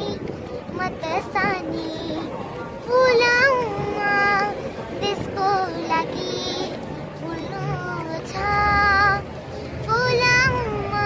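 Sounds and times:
girl singing unaccompanied: 0:00.0 - 0:11.0.

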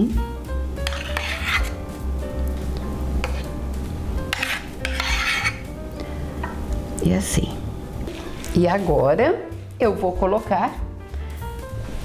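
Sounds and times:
soft background music: 0:00.0 - 0:12.0
metal spoon scraping saucepan: 0:00.8 - 0:01.8, 0:03.2 - 0:03.6, 0:04.2 - 0:05.8.

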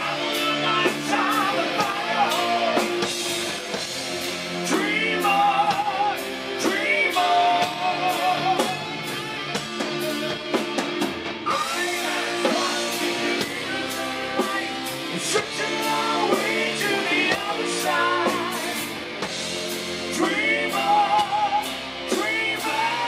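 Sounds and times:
live hard rock band: 0:00.0 - 0:23.0.

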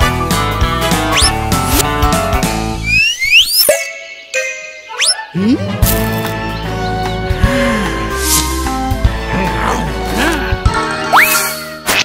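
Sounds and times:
cartoon sliding whistles: 0:01.1 - 0:01.4, 0:02.8 - 0:03.8, 0:05.0 - 0:05.2, 0:11.1 - 0:11.6.

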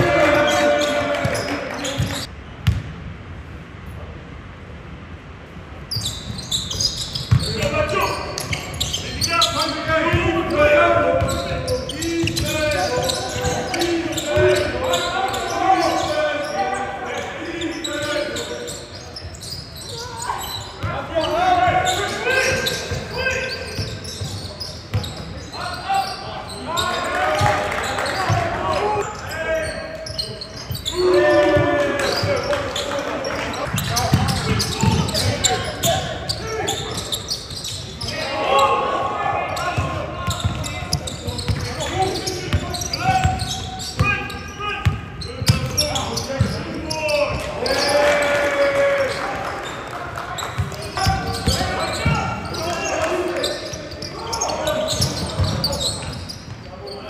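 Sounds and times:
players calling out: 0:00.0 - 0:02.3, 0:06.4 - 0:57.0.

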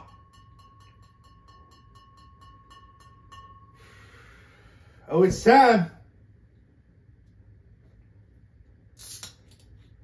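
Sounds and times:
person exhaling: 0:03.8 - 0:05.0.

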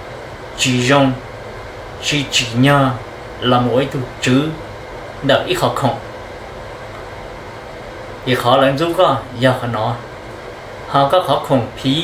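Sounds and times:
low hum: 0:00.0 - 0:12.0
room hiss: 0:00.0 - 0:12.0.

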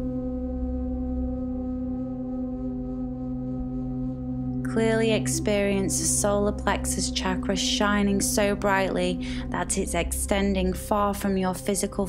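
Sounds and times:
ambient drone music: 0:00.0 - 0:12.0
low hum: 0:00.0 - 0:12.0.

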